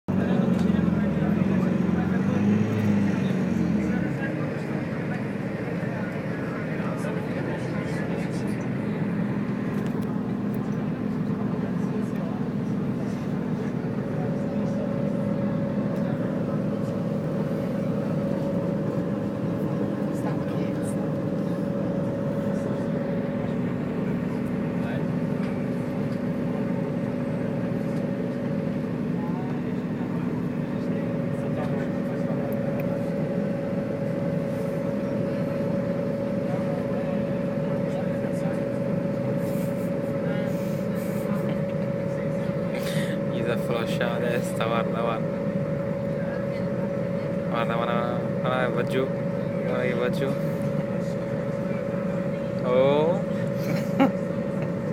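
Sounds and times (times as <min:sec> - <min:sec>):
bus engine and road drone: 0:00.0 - 0:54.9
constant low hum: 0:00.1 - 0:54.9
higher hum: 0:00.2 - 0:54.9.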